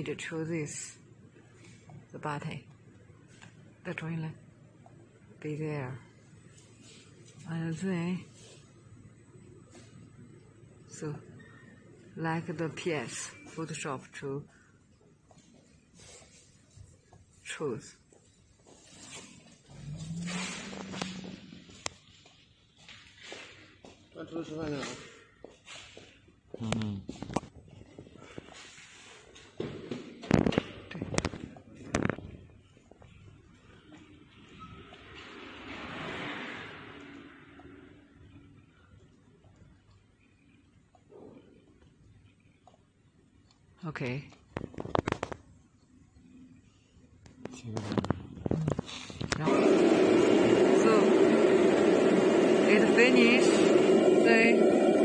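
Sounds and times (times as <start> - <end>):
cutting machine humming: 49.4 - 55.0.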